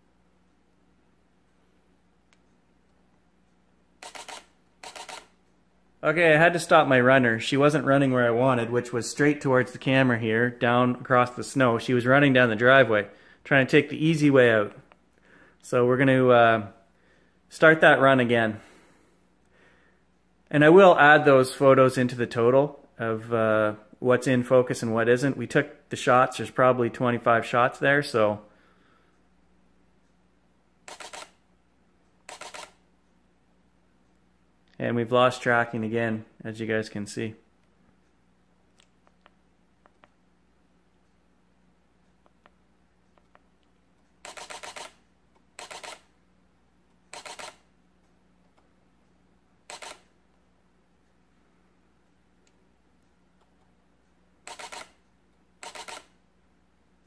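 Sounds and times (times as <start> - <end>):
camera shutter burst clicks: 4.0 - 5.4, 30.9 - 31.4, 32.3 - 32.8, 44.2 - 46.1, 47.1 - 47.7, 49.7 - 50.1, 54.4 - 55.0, 55.6 - 56.2.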